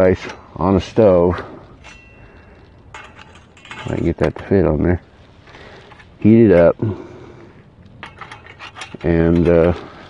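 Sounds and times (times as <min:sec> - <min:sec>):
metal clicks and scrapes: 0:00.2 - 0:04.5, 0:05.5 - 0:06.7, 0:07.8 - 0:10.0.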